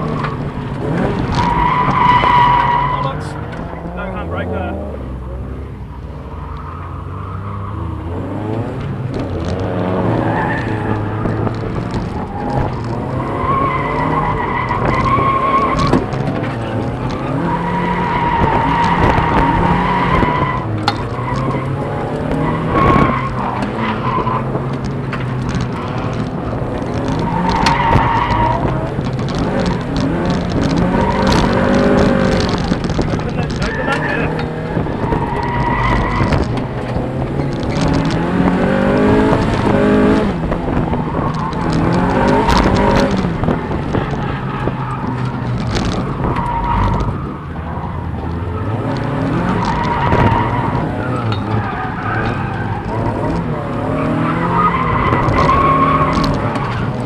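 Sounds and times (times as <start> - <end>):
tyres squealing: 0.0 - 4.8, 10.0 - 57.0
car engine revving: 0.0 - 57.0.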